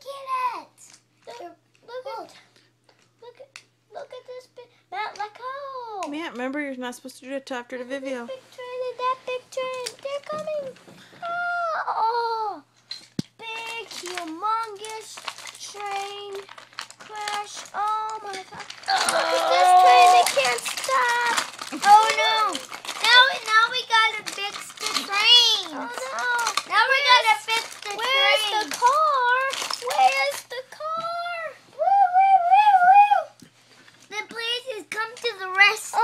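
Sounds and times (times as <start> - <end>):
child making sung play sounds: 8.3 - 12.7, 13.4 - 16.5, 17.1 - 33.4
wooden toy trains clicking: 13.1 - 30.6.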